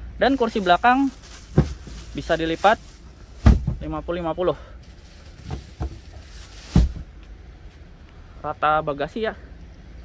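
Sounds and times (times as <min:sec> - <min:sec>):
plastic cover rustling: 0:00.3 - 0:03.8, 0:04.8 - 0:07.1
seatback thumping flat: 0:01.4 - 0:02.2, 0:03.4 - 0:03.9, 0:05.4 - 0:07.1.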